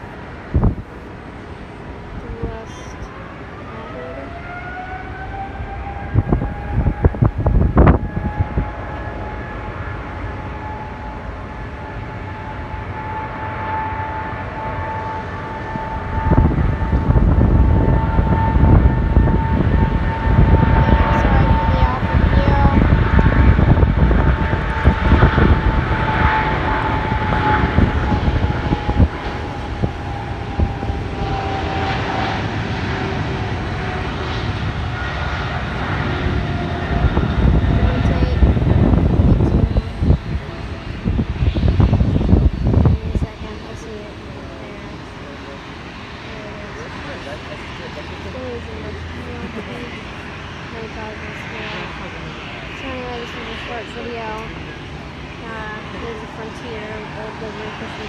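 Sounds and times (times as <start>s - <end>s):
deep jet engine roar: 0.0s - 58.0s
jet engine whine: 0.0s - 58.0s.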